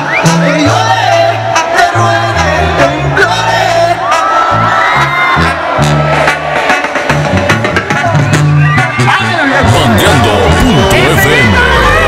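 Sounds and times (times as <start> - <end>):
brass band playing: 0.1 - 12.0
tuba bass line: 0.5 - 12.0
drums keeping the beat: 5.4 - 12.0.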